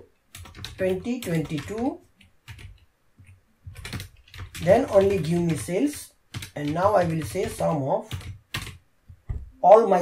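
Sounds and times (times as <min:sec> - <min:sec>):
computer keyboard keystrokes: 0:00.3 - 0:08.8.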